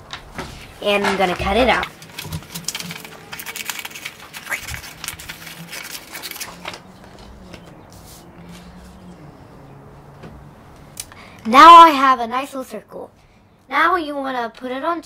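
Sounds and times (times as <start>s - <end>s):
paper rustling: 0.5s - 9.0s
scissors snipping paper: 1.9s - 7.3s.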